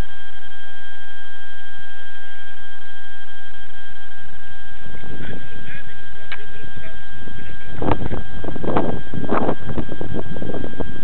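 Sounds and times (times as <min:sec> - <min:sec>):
high whine: 0:00.0 - 0:11.0.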